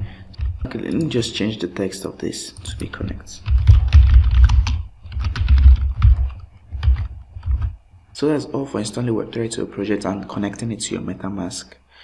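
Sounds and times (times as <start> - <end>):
typing on computer keyboard: 3.4 - 7.8.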